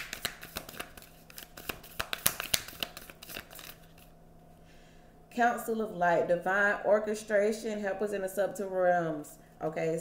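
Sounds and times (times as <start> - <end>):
cards being shuffled: 0.0 - 4.1.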